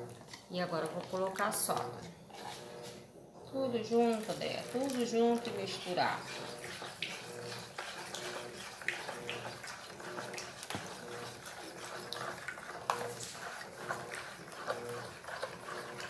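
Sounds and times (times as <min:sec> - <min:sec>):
spoon stirring liquid in bowl: 0:00.0 - 0:16.0.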